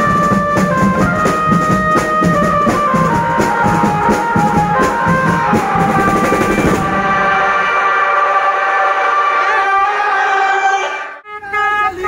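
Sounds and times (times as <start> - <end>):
drums: 0.0 - 8.7.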